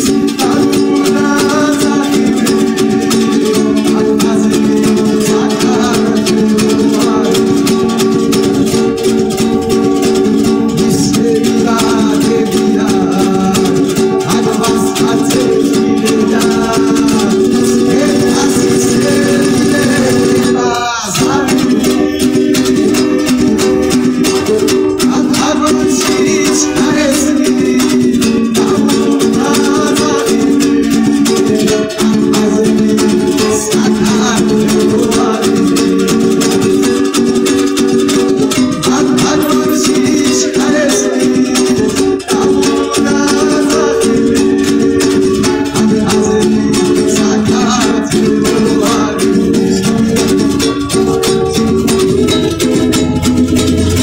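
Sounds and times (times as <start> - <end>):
man singing through amplifier: 0.0 - 9.0, 9.8 - 37.2, 37.8 - 52.9
lutes strummed fast: 0.0 - 54.0.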